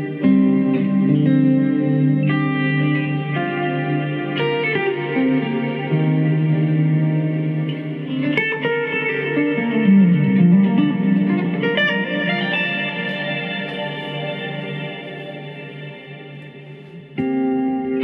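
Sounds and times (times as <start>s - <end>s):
electric guitar with reverb: 0.0s - 18.0s.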